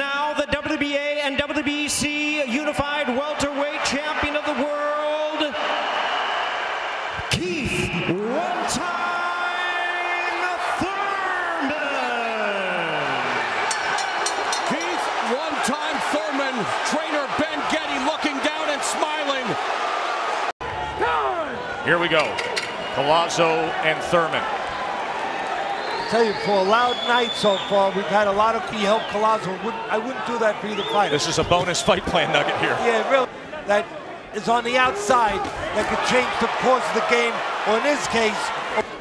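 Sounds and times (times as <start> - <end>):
amplified announcer voice: 0.0 - 5.7, 7.2 - 13.5, 14.6 - 19.6, 26.0 - 33.3, 34.4 - 38.8
arena crowd noise: 0.0 - 39.0.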